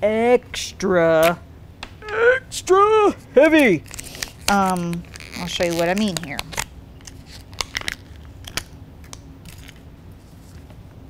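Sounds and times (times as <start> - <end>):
plastic jar lid clicks and crinkles: 3.9 - 9.8.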